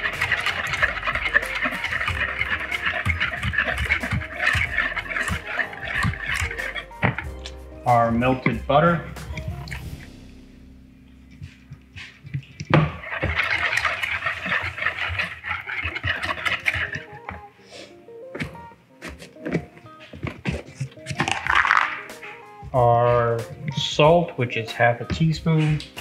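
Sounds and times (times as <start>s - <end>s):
wire whisk scraping a bowl: 0.0s - 9.8s, 12.0s - 17.5s
background music: 0.0s - 26.0s.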